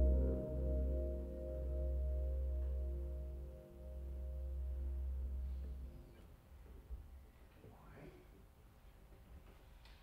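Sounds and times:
jazz quartet final chord ringing: 0.0s - 6.2s.

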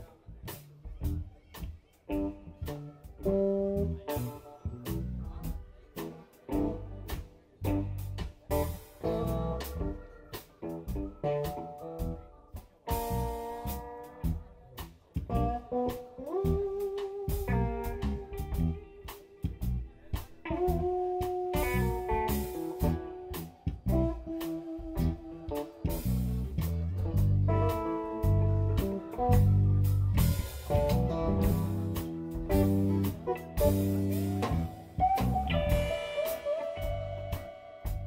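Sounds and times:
live blues band: 0.0s - 38.0s
slide guitar held notes: 15.3s - 38.0s.

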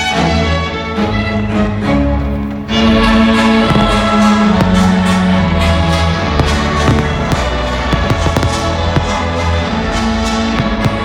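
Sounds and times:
fireworks bursting: 2.7s - 11.0s.

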